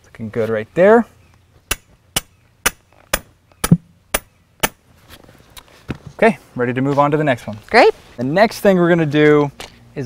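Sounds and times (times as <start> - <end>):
hammer striking metal stake: 1.7 - 4.8.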